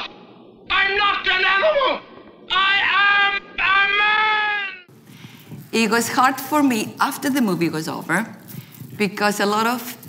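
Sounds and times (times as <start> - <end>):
man yelling in anguish: 0.7 - 4.9.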